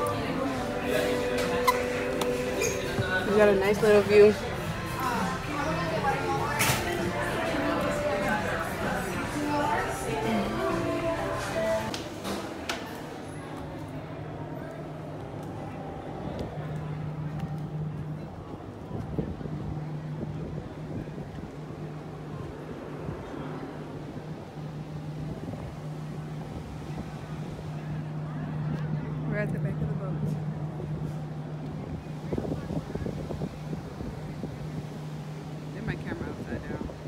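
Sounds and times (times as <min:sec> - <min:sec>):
indistinct voices: 0:00.0 - 0:37.0
ship machinery hum: 0:00.0 - 0:37.0
wind noise on microphone: 0:17.8 - 0:29.1, 0:30.2 - 0:37.0.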